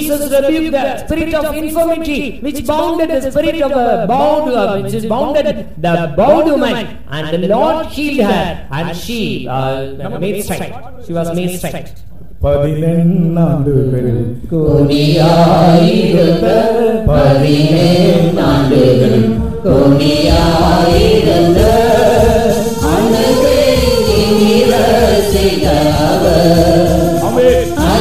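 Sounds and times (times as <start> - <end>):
slow devotional singing: 12.9 - 28.0
low drum beat: 17.1 - 28.0.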